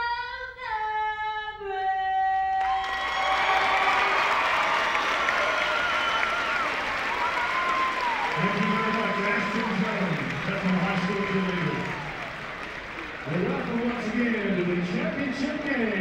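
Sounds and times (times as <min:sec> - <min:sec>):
woman singing unaccompanied: 0:00.0 - 0:02.8
large crowd applauding: 0:02.6 - 0:16.0.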